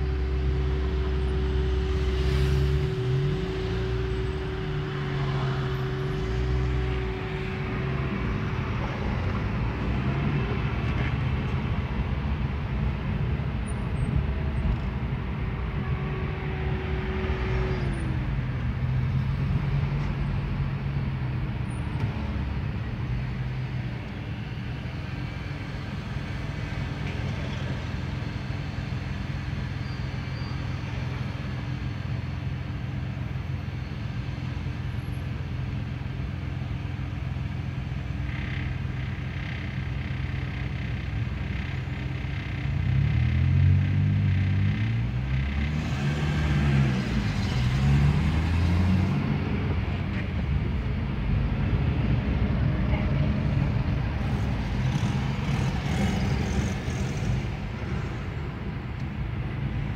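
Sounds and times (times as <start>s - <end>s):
car engine humming and revving: 0.0s - 59.9s.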